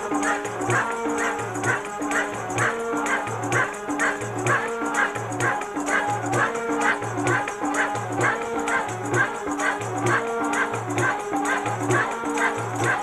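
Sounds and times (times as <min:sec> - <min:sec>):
harmonium tones: 0:00.0 - 0:13.0
jingling percussion: 0:00.0 - 0:13.0
voices singing: 0:00.0 - 0:13.0.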